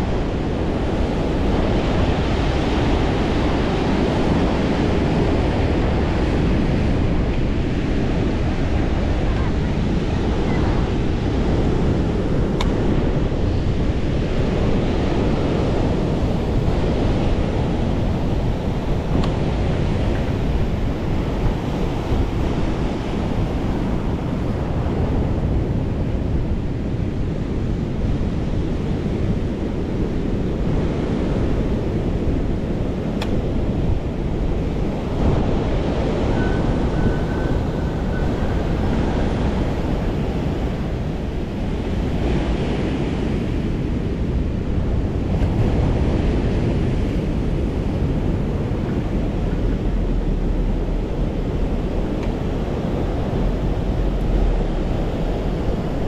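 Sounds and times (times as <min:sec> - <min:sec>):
ocean surf breaking against seawall: 0:00.0 - 0:56.0
wind buffeting microphone: 0:00.0 - 0:56.0.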